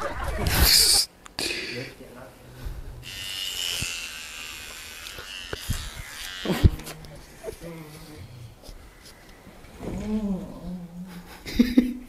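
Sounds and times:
electric hair clippers buzzing: 0:03.0 - 0:07.4.

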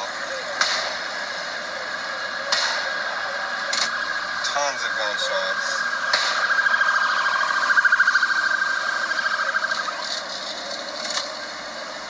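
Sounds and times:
pulsing electronic alarm tone: 0:01.3 - 0:11.8.

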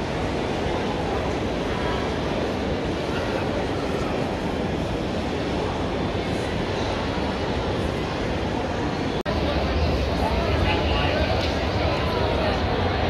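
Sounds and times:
convention hall rumble: 0:00.0 - 0:13.0.

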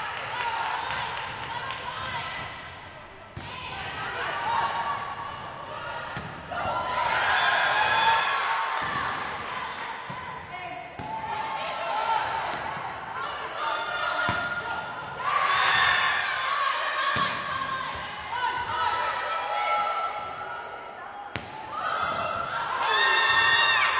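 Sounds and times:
players shouting in echoing hall: 0:00.0 - 0:23.9
volleyball struck with smacks: 0:21.3 - 0:22.2.

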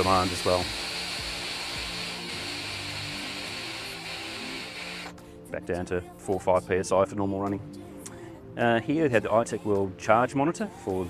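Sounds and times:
air hissing from airbags: 0:00.0 - 0:05.2.

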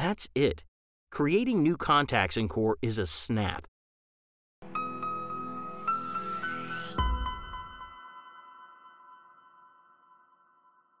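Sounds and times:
bell-like chime tones: 0:07.0 - 0:11.0.

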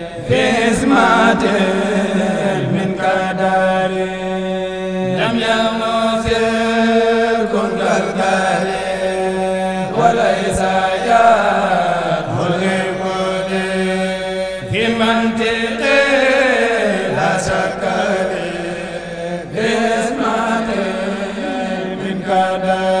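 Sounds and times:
lead voice singing ornamented melody: 0:00.0 - 0:03.9, 0:19.4 - 0:23.0
men chanting held note: 0:19.5 - 0:22.4.

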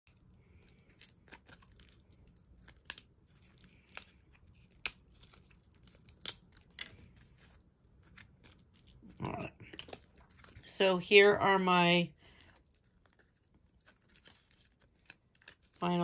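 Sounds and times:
faint ticks and crinkles: 0:11.8 - 0:16.0.

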